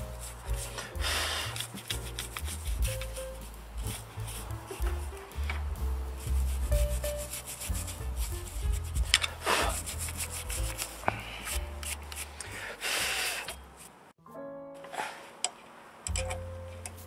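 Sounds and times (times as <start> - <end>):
toothbrush scrubbing metal: 0.0 - 5.2, 6.2 - 12.6.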